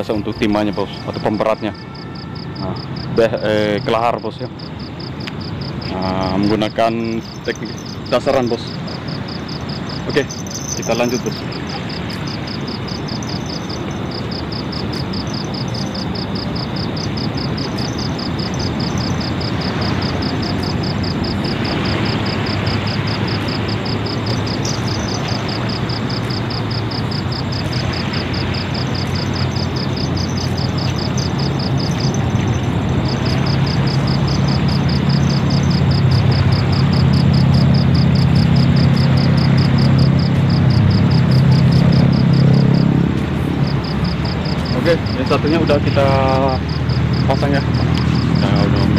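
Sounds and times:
broad rushing noise: 0:00.0 - 0:48.9
insects chirping: 0:00.0 - 0:48.9
low engine drone: 0:05.8 - 0:48.9.

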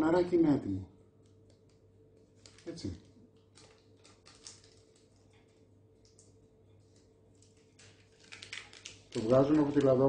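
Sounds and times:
parchment paper rustling: 0:01.6 - 0:10.0.

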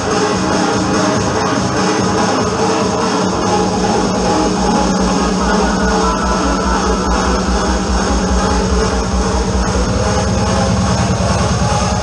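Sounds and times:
hard trance music: 0:00.0 - 0:12.0.

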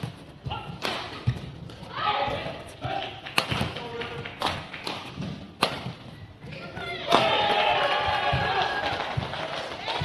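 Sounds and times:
racket striking shuttlecock: 0:00.6 - 0:01.4, 0:02.3 - 0:06.0.

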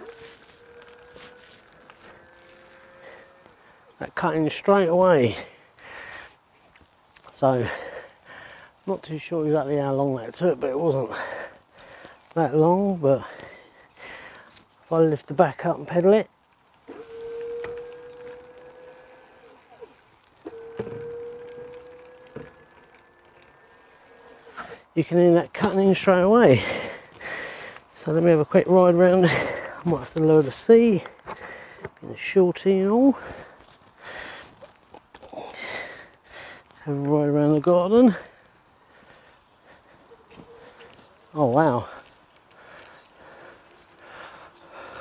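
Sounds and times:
electric bike motor whining: 0:00.0 - 0:03.9, 0:16.7 - 0:24.8.

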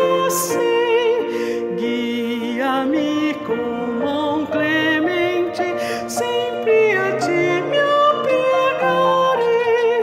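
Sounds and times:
piano accompaniment: 0:00.0 - 0:10.0
woman singing a hymn: 0:00.0 - 0:10.0.

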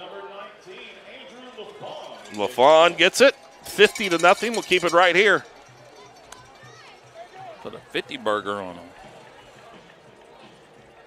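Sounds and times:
booth commentary: 0:00.0 - 0:05.5, 0:07.2 - 0:09.2
man talking: 0:01.2 - 0:05.4, 0:07.7 - 0:08.9.

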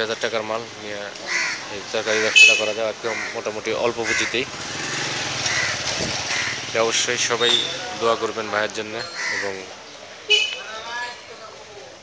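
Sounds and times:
crow cawing: 0:01.2 - 0:04.6, 0:05.3 - 0:06.8, 0:09.0 - 0:09.7
man speaking: 0:01.8 - 0:04.5.

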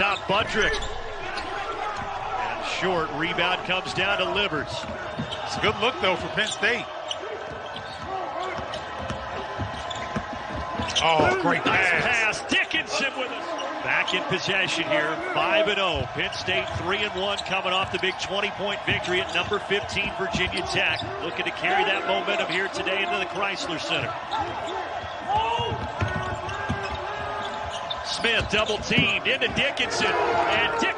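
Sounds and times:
sneaker squeaks: 0:00.1 - 0:02.1, 0:04.8 - 0:11.4, 0:24.1 - 0:29.6
basketball bouncing on hardwood: 0:07.4 - 0:11.3, 0:25.0 - 0:29.6.

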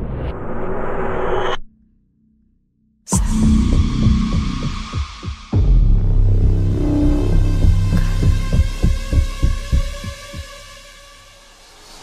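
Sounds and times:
steady drone: 0:03.1 - 0:12.0
heartbeat thumps: 0:03.2 - 0:10.6.

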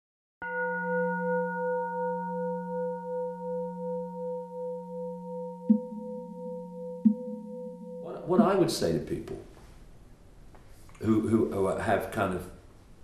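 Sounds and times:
struck bell-like metal tone: 0:00.4 - 0:08.6.

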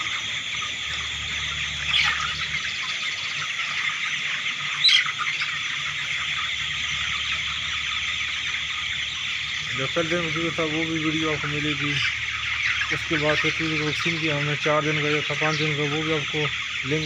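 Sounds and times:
chicks peeping in chorus: 0:00.0 - 0:17.0
loud chicken calls: 0:00.0 - 0:17.0.

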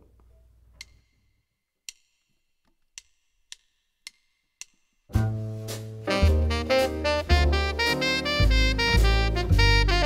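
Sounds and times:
sharp percussive clicks: 0:00.8 - 0:05.1.

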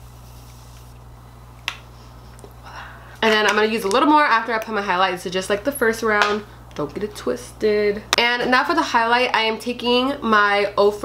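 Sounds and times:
spray can hissing: 0:00.0 - 0:01.0
low steady hum: 0:00.0 - 0:11.0.

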